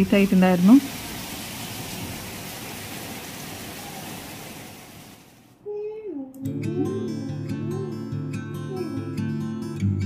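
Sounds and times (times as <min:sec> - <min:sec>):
heavy rain falling: 0:00.0 - 0:05.4.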